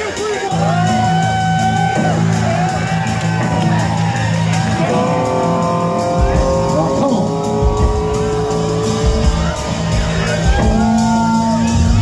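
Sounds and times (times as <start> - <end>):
bass: 0.0 - 12.0
electric guitar notes sliding down: 4.6 - 12.0.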